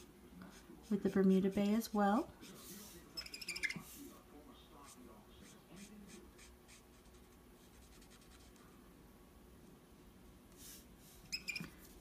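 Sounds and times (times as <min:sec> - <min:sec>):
marker rubbing on cardstock: 0:02.4 - 0:04.1, 0:04.8 - 0:08.5, 0:10.6 - 0:11.7
marker squeak: 0:03.2 - 0:03.9, 0:11.2 - 0:11.9.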